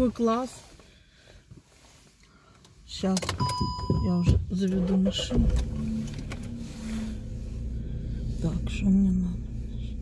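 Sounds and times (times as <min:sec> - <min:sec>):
car engine idling: 0:04.5 - 0:10.0.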